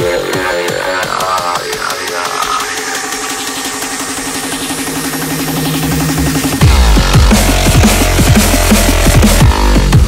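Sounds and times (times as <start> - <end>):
stuttering buzzing synth: 0.0 - 10.0
rising noise sweep: 1.4 - 9.2.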